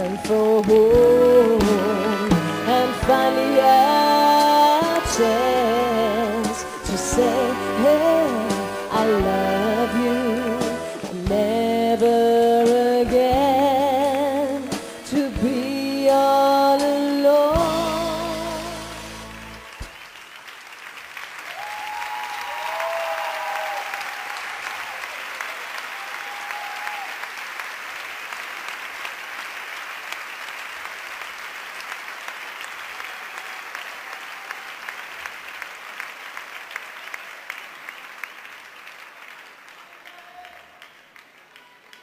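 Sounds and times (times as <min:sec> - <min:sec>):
people cheering: 0:00.0 - 0:02.3, 0:19.2 - 0:20.6, 0:21.3 - 0:27.5, 0:32.8 - 0:35.4, 0:39.4 - 0:42.0
audience applauding: 0:00.0 - 0:08.8, 0:18.4 - 0:42.0.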